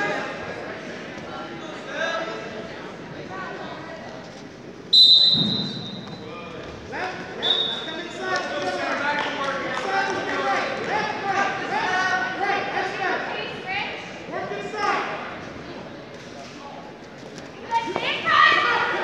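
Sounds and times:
referee's whistle blasts: 4.9 - 6.2, 7.4 - 7.9.

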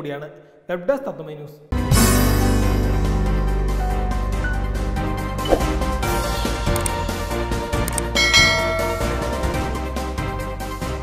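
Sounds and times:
background music: 1.7 - 11.0
bell chime ding: 8.1 - 9.8.

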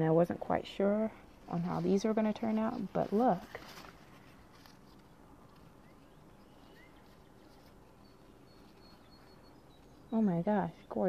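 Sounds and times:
faint bird chirps: 4.8 - 10.9.

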